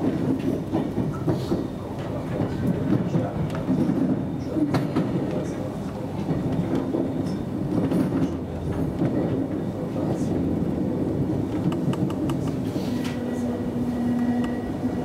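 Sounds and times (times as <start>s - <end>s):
train wheels clicking over joints: 0.0s - 9.7s
train running gear rumble: 0.0s - 15.0s.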